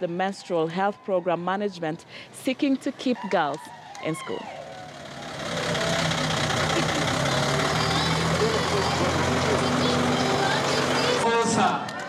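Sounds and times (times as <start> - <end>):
truck engine running: 3.8 - 11.8
faint voices: 5.6 - 12.0.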